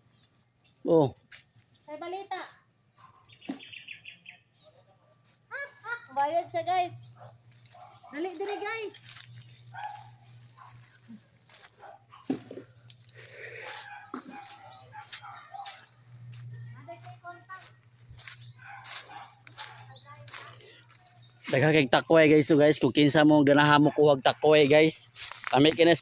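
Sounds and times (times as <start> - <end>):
steady low hum: 5.5 - 23.0.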